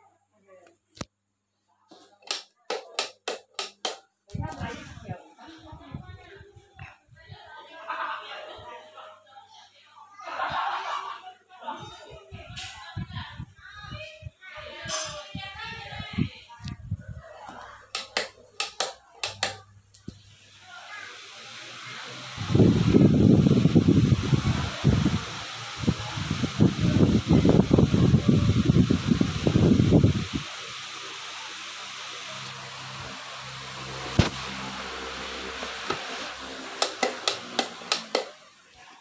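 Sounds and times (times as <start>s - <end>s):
sharp clicks: 2.2s - 4.0s, 18.0s - 19.6s
fan running: 2.2s - 6.4s, 12.4s - 39.0s
wind buffeting microphone: 15.0s - 17.3s, 22.4s - 30.4s.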